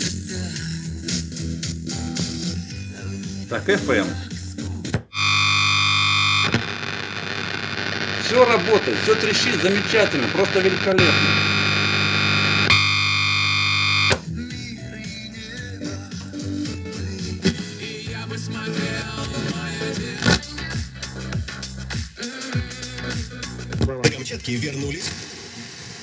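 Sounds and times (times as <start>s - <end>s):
crackling interference: 5.2s - 14.2s
radio static hiss: 5.2s - 14.2s
faint radio music: 6.3s - 20.4s.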